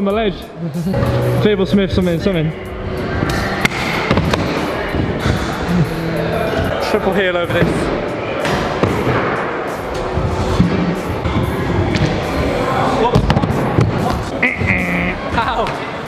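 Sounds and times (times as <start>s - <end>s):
background music: 0.0s - 16.0s.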